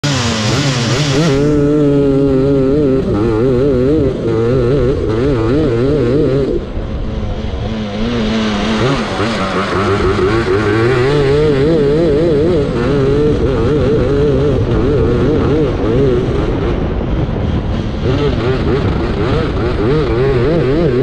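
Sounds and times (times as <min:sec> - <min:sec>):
lawnmower engine revving: 0:00.0 - 0:21.0.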